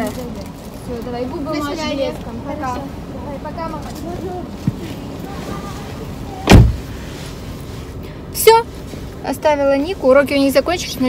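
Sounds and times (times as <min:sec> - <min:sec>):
car door slamming: 0:06.4 - 0:07.0.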